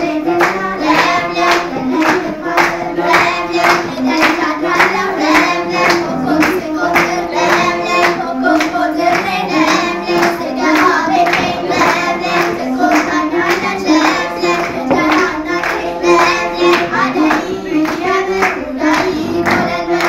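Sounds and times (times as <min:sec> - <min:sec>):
girls singing together: 0:00.0 - 0:20.0
hand claps: 0:00.3 - 0:20.0.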